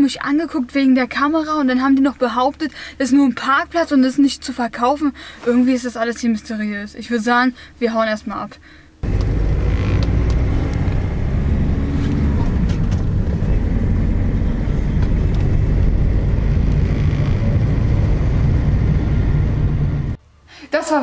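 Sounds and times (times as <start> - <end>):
van engine and road rumble: 9.0 - 20.2.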